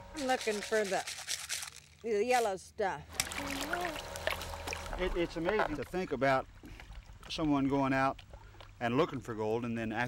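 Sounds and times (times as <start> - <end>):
water splashing and trickling: 0.2 - 2.5, 3.1 - 10.0.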